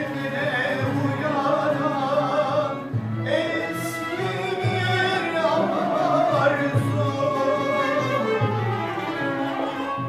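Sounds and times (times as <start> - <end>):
violin melody: 0.0 - 10.0.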